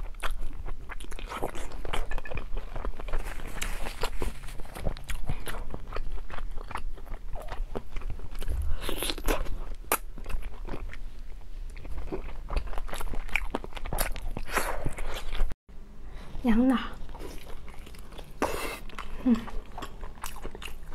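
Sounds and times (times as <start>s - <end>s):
wet chewing and biting: 0.0s - 15.6s, 17.1s - 20.9s.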